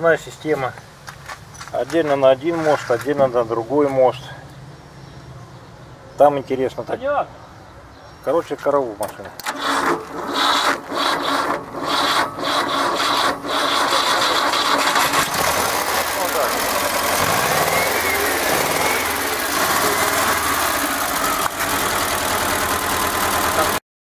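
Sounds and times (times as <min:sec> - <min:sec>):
engine running: 0:09.4 - 0:23.8
engine knocks: 0:11.0 - 0:23.8.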